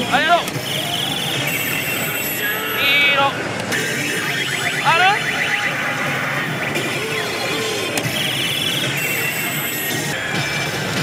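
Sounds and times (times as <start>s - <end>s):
din of a pachinko hall: 0.0s - 11.0s
slot machine effects and music: 0.6s - 2.8s, 3.7s - 11.0s.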